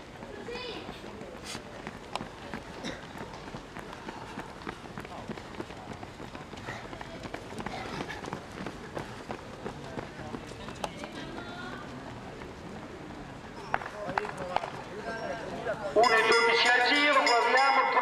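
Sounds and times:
faint voices: 0.0s - 18.0s
runners' footsteps on running track: 0.0s - 18.0s.

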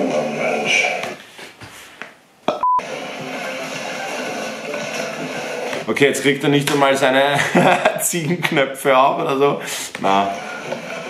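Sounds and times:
electronic beep: 2.6s - 2.8s
background music: 2.8s - 8.4s.

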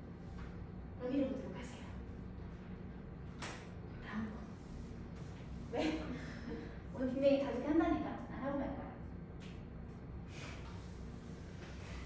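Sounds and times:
low room hum: 0.0s - 12.0s
woman's voice: 5.7s - 9.0s.

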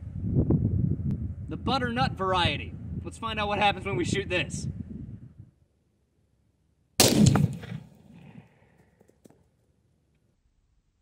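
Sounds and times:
rifle shot with echo: 7.0s - 8.2s.

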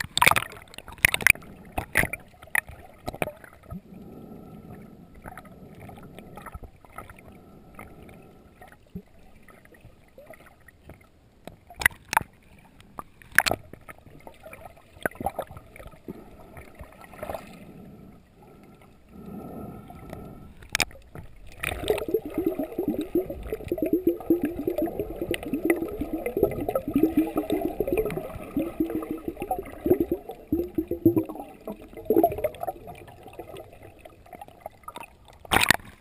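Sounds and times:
underwater bubbling and gurgling: 0.0s - 36.0s.

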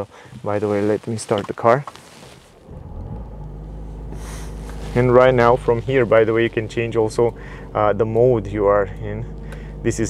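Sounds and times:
car engine starting and idling: 0.0s - 10.0s.

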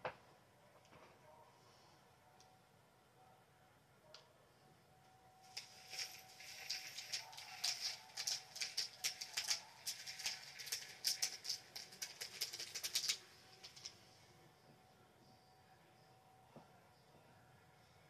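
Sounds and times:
plastic beads pouring through funnel: 5.5s - 13.9s.

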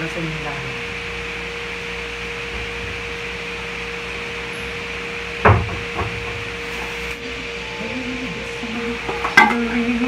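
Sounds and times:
mechanical hum with hiss: 0.0s - 10.0s.

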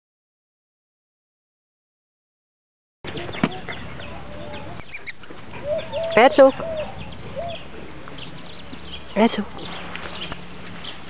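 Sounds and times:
chickens clucking: 3.1s - 11.0s.

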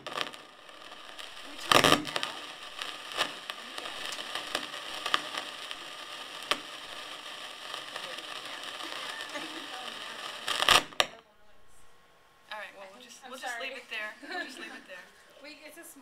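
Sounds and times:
loud rustling burst: 0.0s - 11.1s.

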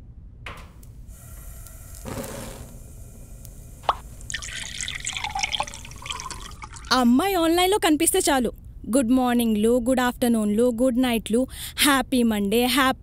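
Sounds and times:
dripping and spattering liquid: 3.9s - 7.0s.

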